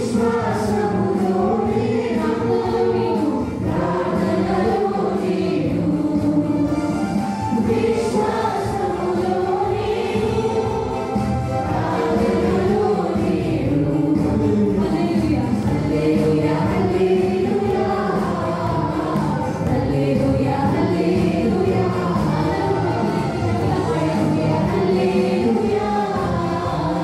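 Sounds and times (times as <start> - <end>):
choir singing: 0.0 - 27.0
keyboard accompaniment: 0.0 - 27.0.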